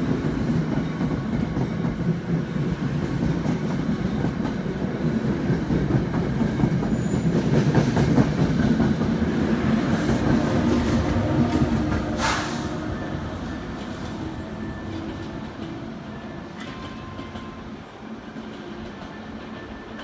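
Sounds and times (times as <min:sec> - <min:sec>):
electric locomotive passing: 0:00.0 - 0:20.0
train cars rolling past: 0:00.0 - 0:20.0.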